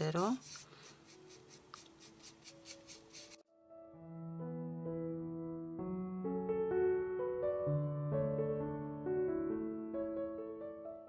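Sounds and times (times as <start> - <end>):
paintbrush scrubbing: 0.0 - 3.4.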